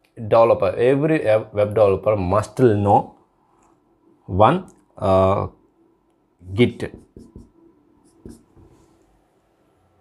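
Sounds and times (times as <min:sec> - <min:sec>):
marker writing on whiteboard: 0:06.7 - 0:09.0.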